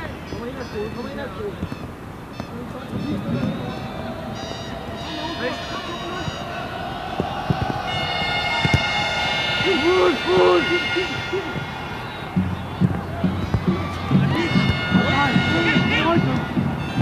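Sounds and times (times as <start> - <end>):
stadium crowd noise: 0.0 - 17.0
steady horn tone: 2.3 - 6.8, 7.4 - 17.0.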